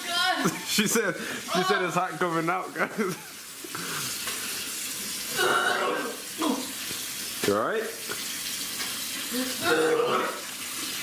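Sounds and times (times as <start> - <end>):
water running from a tap: 0.0 - 11.0.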